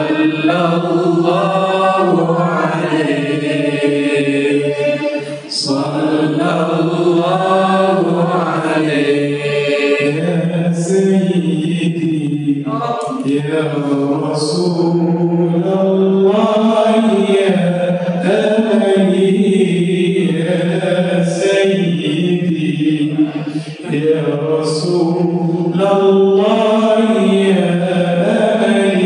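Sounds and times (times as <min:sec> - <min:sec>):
man chanting into a microphone: 0:00.0 - 0:29.0.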